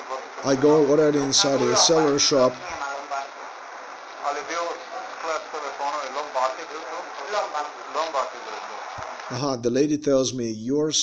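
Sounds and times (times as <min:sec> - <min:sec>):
person talking: 0:00.0 - 0:03.4, 0:04.2 - 0:11.0.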